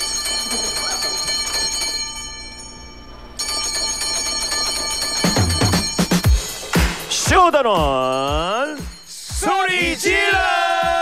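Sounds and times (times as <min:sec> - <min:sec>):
shimmering bell chime: 0:00.0 - 0:06.7.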